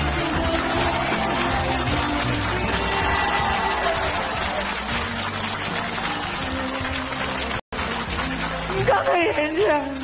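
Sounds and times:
audience applauding: 0:00.0 - 0:10.0
sentimental background music: 0:00.0 - 0:10.0.

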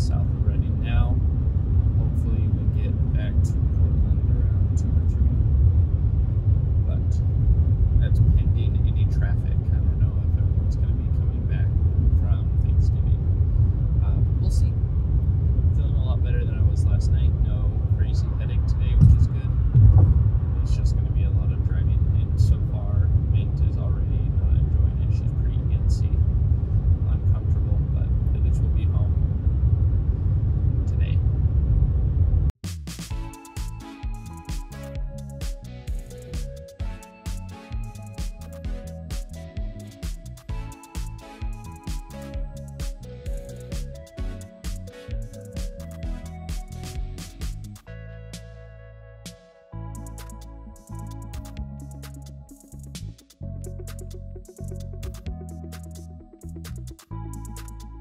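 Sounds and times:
car cabin road rumble: 0:00.0 - 0:32.6
car bumps: 0:19.0 - 0:20.4.

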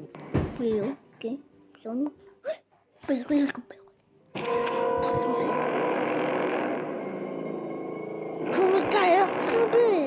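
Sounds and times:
horror drone of held tones: 0:04.4 - 0:10.0.

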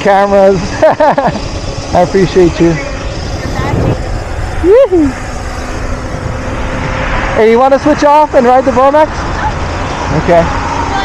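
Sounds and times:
electric motor humming: 0:00.0 - 0:11.0
wind rushing over microphone: 0:02.1 - 0:11.0.

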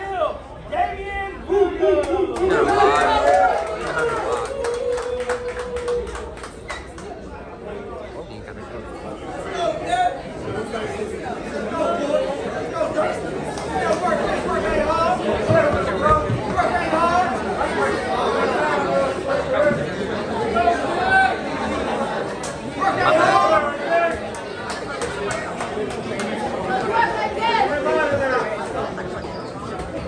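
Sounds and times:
chatter in echoing room: 0:00.0 - 0:30.0.

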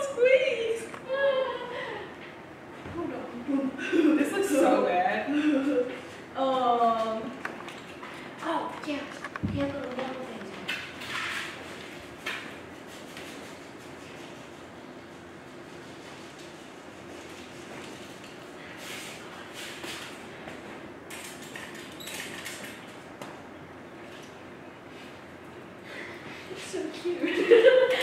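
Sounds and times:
room hum: 0:00.0 - 0:28.0.

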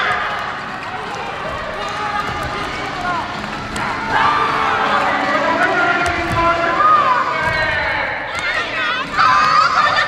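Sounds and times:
many voices shouting together: 0:03.9 - 0:05.8, 0:08.3 - 0:10.0.

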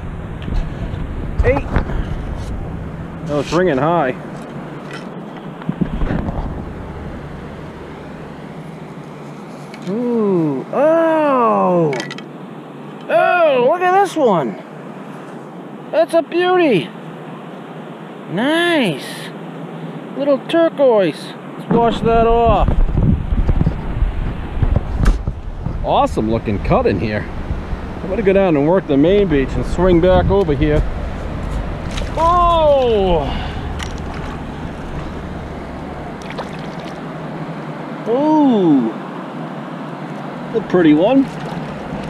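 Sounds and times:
wind hiss: 0:21.5 - 0:42.0.

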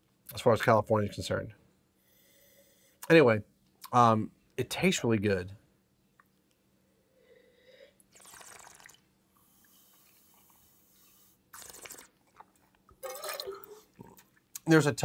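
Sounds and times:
breathing: 0:02.0 - 0:03.0, 0:06.8 - 0:08.1, 0:09.4 - 0:11.5
person slurping wine: 0:08.1 - 0:14.4.

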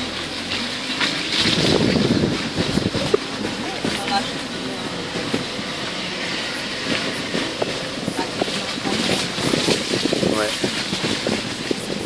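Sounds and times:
road and engine noise: 0:00.0 - 0:12.0.

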